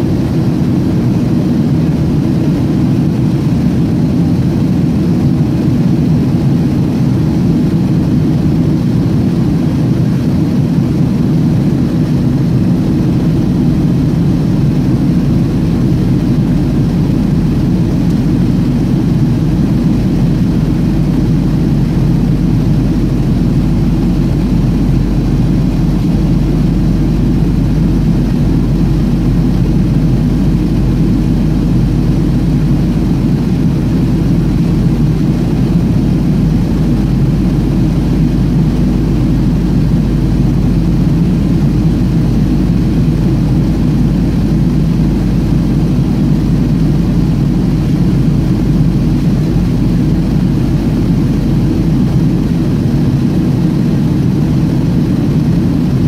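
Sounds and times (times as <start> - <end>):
airliner cabin jet engine noise: 0.0 - 56.0.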